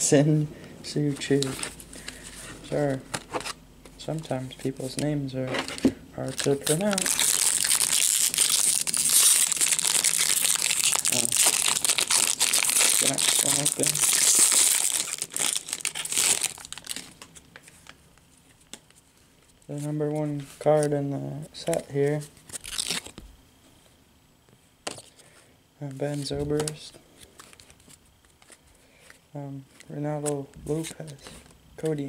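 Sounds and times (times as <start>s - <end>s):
foil wrapper crinkling and tearing: 6.2s - 17.4s, 22.5s - 23.2s.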